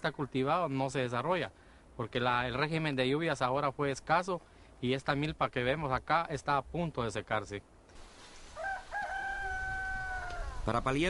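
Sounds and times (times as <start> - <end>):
rooster crowing: 8.5 - 10.7.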